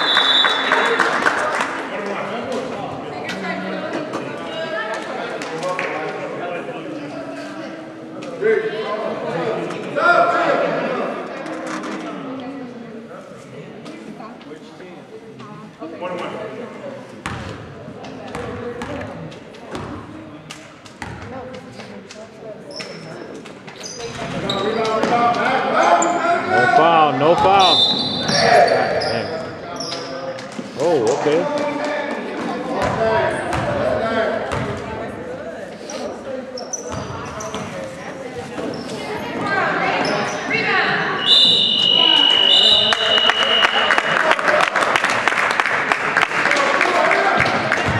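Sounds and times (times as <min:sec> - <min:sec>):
sneaker squeaks: 0:22.7 - 0:25.1, 0:27.4 - 0:30.3, 0:35.8 - 0:43.6
people calling out: 0:39.5 - 0:44.2.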